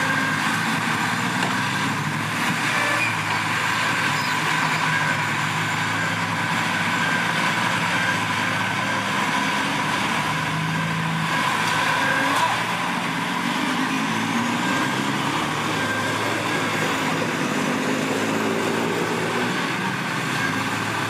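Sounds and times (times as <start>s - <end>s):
bulldozer diesel engine running: 0.0s - 21.0s.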